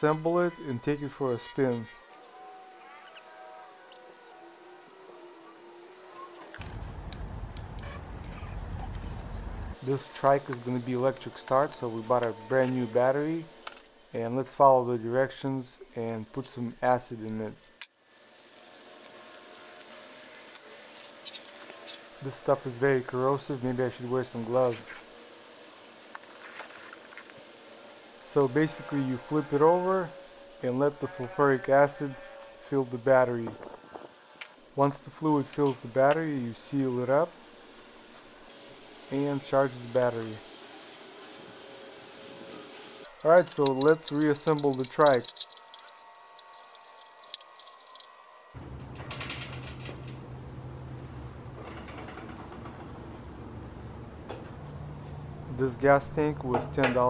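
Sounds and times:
steady low hum: 0.0 - 17.8
gloves rustling and crinkling: 17.6 - 22.0, 25.9 - 27.8, 43.3 - 48.2.

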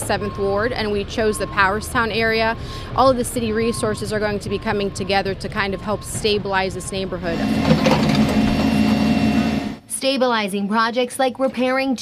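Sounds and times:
diesel engine running: 0.0 - 9.8.

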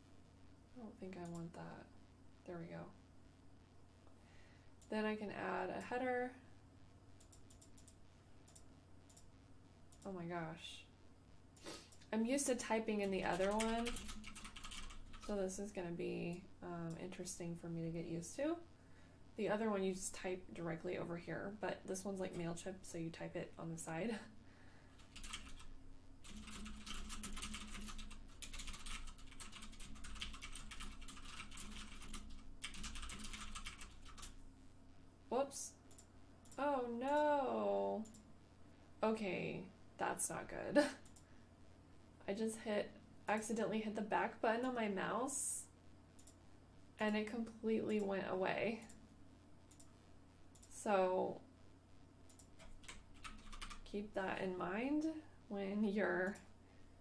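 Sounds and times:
typing on computer keyboard: 7.2 - 9.3, 13.1 - 15.4, 25.0 - 34.4, 52.3 - 53.8.

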